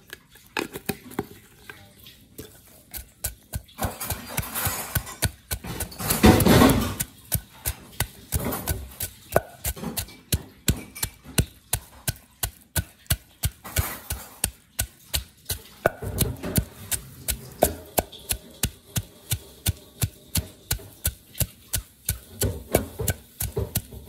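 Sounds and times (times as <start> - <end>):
wooden pestle pounding in mortar: 3.0 - 24.0.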